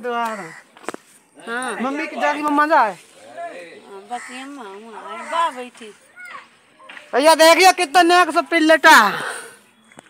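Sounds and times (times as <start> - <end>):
indistinct talking: 0.0 - 9.8.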